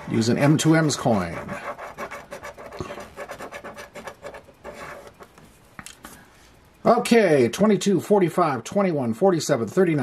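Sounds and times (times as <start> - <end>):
coin scratching lottery ticket: 0.2 - 5.2.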